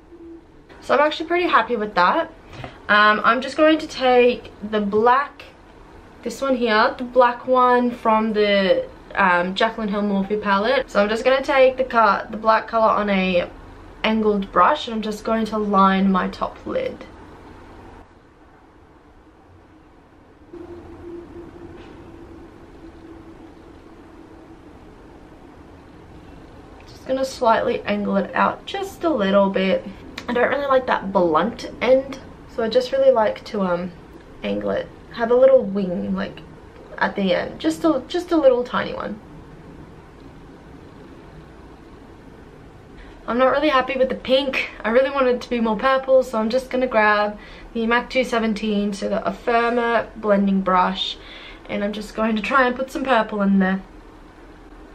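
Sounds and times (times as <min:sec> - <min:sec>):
low steady hum: 0:00.0 - 0:54.9
low rumble: 0:17.6 - 0:34.5.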